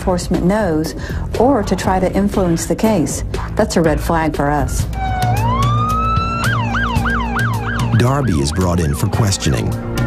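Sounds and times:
police car siren wailing and yelping: 0:04.9 - 0:09.4.

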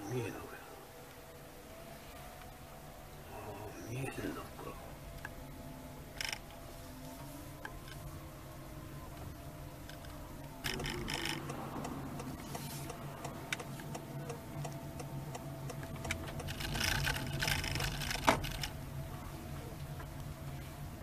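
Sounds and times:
car cabin low hum: 0:00.0 - 0:21.0
faint steady tones: 0:00.0 - 0:21.0
crackling noise bursts: 0:09.0 - 0:19.2.

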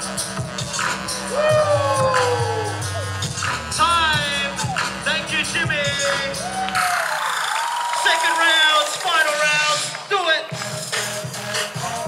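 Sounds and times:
dance music through speakers: 0:00.0 - 0:12.0
crowd cheering and whooping: 0:01.2 - 0:09.7
person singing: 0:03.7 - 0:06.6.

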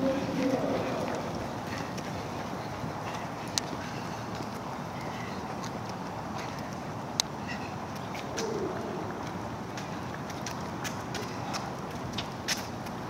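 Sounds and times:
shoes tapping on asphalt: 0:00.0 - 0:13.0.

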